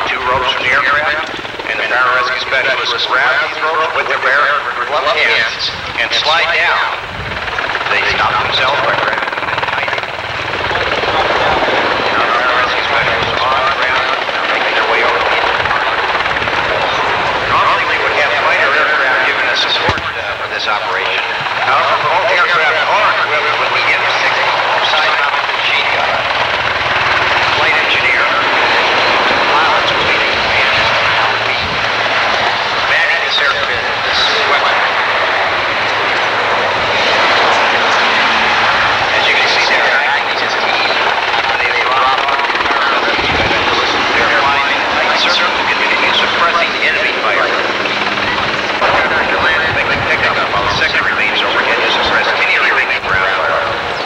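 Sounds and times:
helicopter rotor and turbine noise: 0.0s - 54.0s
indistinct voices: 0.0s - 54.0s.

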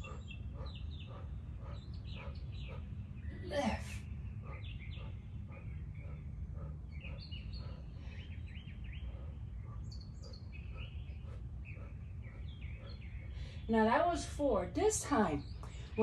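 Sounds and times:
low background rumble: 0.0s - 16.0s
small birds chirping: 0.0s - 16.0s.

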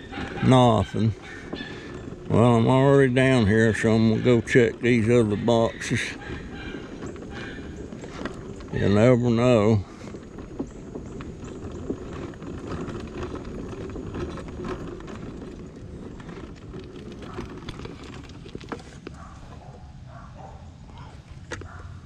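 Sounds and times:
scooter clicks and rattles: 0.0s - 22.0s
scooter motor and tyres rumbling: 0.0s - 22.0s.

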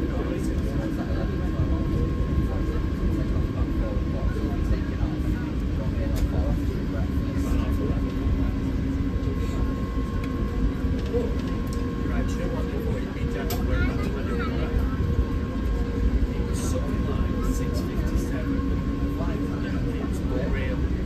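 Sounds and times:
aircraft cabin engine rumble: 0.0s - 21.0s.

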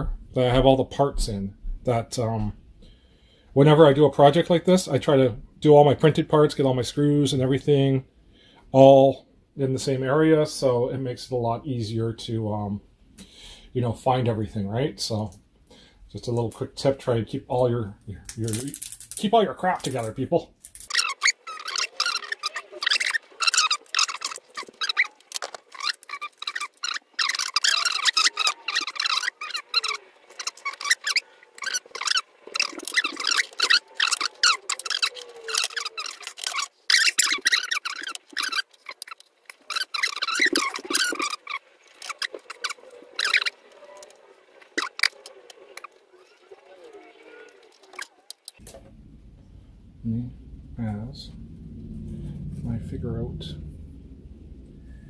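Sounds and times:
wires crackling and clicking: 18.0s - 55.0s.

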